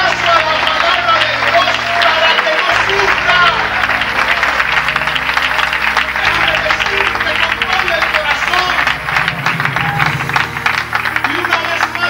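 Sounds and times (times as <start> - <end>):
congregation clapping: 0.0 - 12.0
music playing: 0.0 - 12.0.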